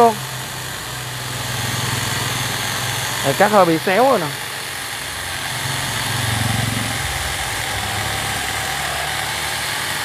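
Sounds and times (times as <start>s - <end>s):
chainsaw cutting log: 0.0s - 10.0s.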